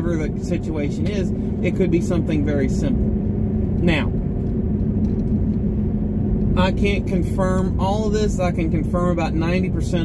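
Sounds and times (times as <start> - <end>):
engine and road rumble: 0.0 - 10.0
engine hum: 0.0 - 10.0.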